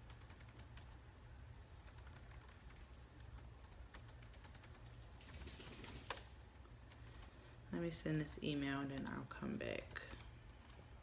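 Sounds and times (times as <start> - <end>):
typing on keyboard: 0.0 - 1.0, 1.8 - 6.2.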